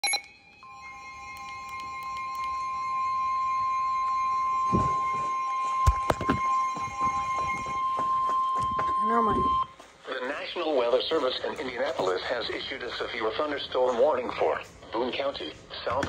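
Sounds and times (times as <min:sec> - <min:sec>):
weather radio alarm tone: 0:02.2 - 0:10.3.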